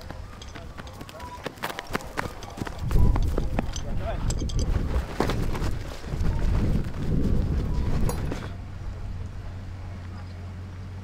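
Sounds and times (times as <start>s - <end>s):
metal clacks: 0.0s - 4.7s
running footsteps on grass: 0.0s - 8.6s.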